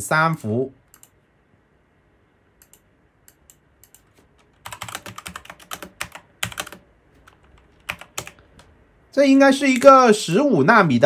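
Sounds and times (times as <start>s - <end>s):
computer clicks: 0.9s - 1.2s, 2.6s - 8.7s.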